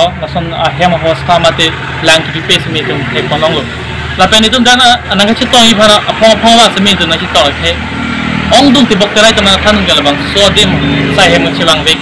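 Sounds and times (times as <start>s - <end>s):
man speaking: 0.0s - 7.8s, 8.5s - 12.0s.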